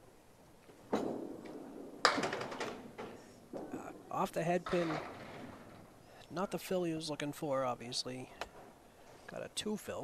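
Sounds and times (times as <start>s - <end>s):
bowling pins clattering: 0.9s - 6.1s
bowling ball rolling on lane: 4.6s - 6.0s.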